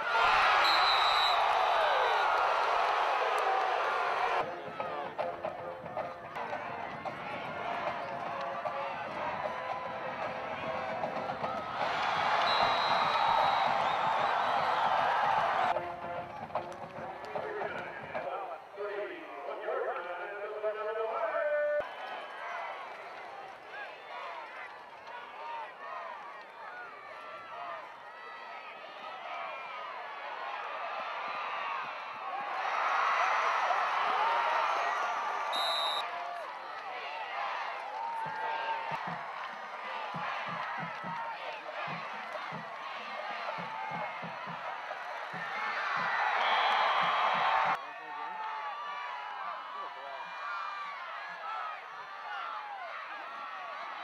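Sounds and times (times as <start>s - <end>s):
crowd cheering loudly: 0.0s - 16.5s, 21.4s - 54.0s
stadium crowd noise: 0.0s - 54.0s.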